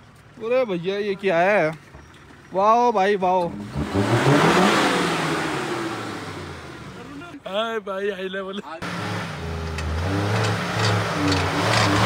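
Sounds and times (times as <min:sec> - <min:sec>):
car engine revving hard: 0:03.5 - 0:07.0, 0:08.8 - 0:12.0.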